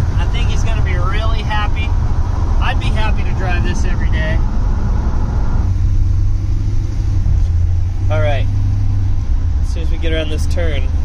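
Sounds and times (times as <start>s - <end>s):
truck engine low drone: 0.0s - 11.0s.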